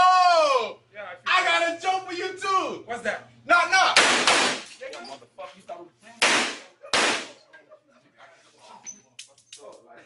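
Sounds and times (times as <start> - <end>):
gunshots: 4.0 - 4.7, 6.2 - 7.4.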